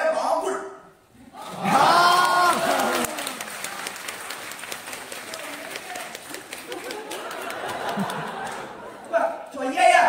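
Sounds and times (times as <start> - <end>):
loud shout: 1.3 - 3.5
audience applause: 1.4 - 9.0.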